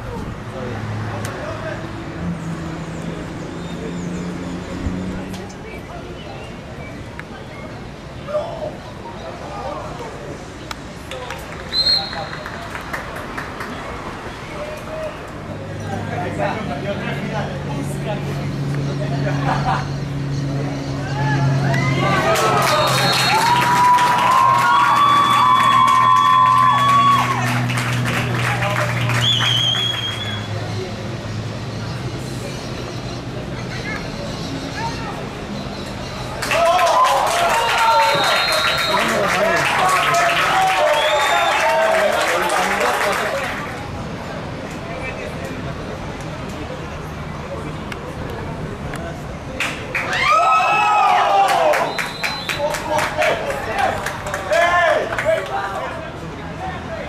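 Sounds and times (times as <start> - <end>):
people clapping: 10.7 - 14.0, 21.7 - 30.5, 36.3 - 43.9, 48.9 - 56.0
long drawn-out yells: 21.0 - 27.7, 36.4 - 38.9, 50.0 - 51.9
crowd cheering and shouting: 21.0 - 30.4, 36.3 - 43.4, 49.9 - 56.0
faint voices: 30.1 - 57.0.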